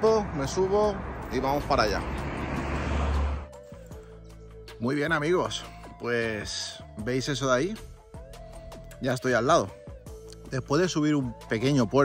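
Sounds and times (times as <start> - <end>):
music of held steady tones: 2.6 - 12.0.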